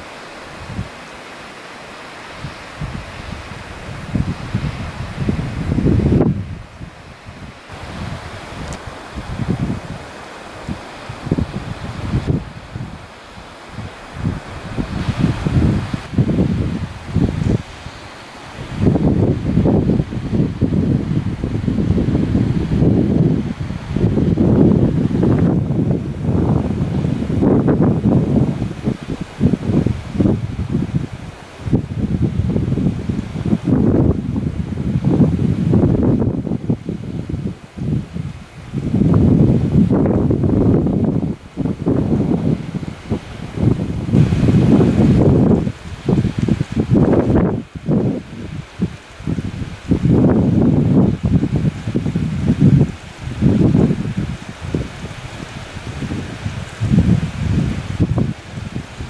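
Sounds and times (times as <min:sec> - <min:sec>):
wind buffeting microphone: 0:00.0 - 0:01.0, 0:02.3 - 0:59.0.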